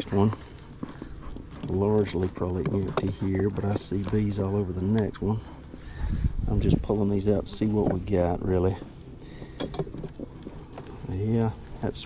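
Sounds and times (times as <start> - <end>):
wind rumble on microphone: 5.8 - 8.5.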